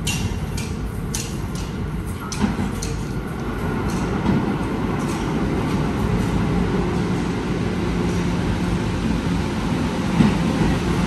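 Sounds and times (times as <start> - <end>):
subway train wheels rumbling: 0.0 - 11.0.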